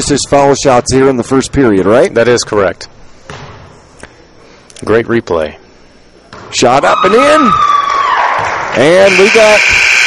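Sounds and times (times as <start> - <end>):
gymnasium room noise: 0.0 - 10.0.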